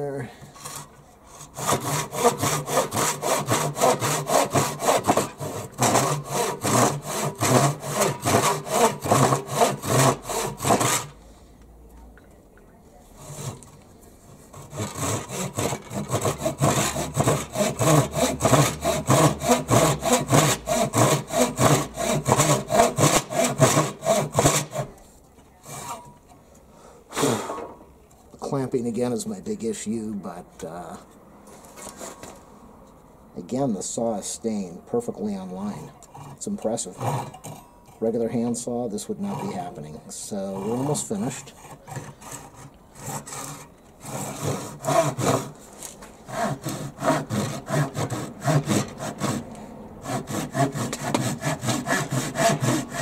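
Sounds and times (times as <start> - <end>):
hand saw cutting wood: 0.5 - 11.2, 13.2 - 25.0, 25.6 - 26.2, 27.1 - 27.7, 31.8 - 32.4, 35.3 - 53.0.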